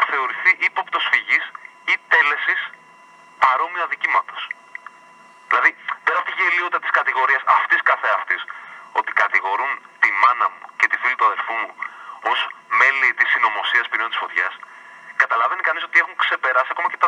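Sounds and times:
man talking over telephone: 0:00.0 - 0:02.8, 0:03.4 - 0:04.6, 0:05.5 - 0:17.0.

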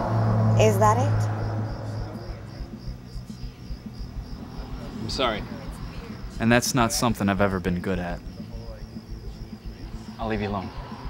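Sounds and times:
low background rumble: 0:00.0 - 0:10.8
cricket chirping: 0:00.0 - 0:11.0.

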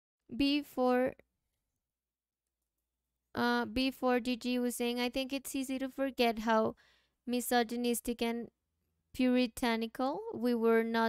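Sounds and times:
woman speaking: 0:00.3 - 0:01.2, 0:03.4 - 0:06.7, 0:07.3 - 0:08.5, 0:09.2 - 0:11.0.

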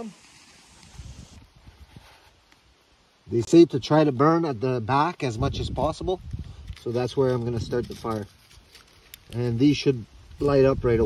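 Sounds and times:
faint paper rustling: 0:00.0 - 0:02.7, 0:06.2 - 0:09.9.

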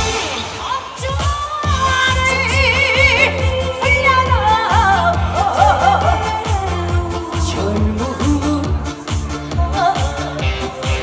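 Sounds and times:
amplified band backing: 0:00.0 - 0:11.0
woman singing into microphone: 0:00.0 - 0:11.0.

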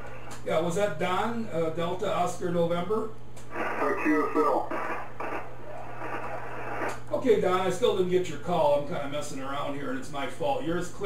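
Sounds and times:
steady low hum: 0:00.0 - 0:11.0
radio receiver hiss: 0:03.4 - 0:07.0.

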